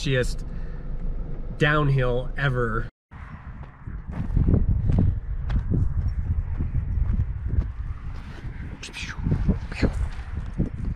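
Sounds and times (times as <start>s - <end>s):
steady low rumble: 0.0s - 10.9s
footsteps on dry grass: 3.5s - 10.9s.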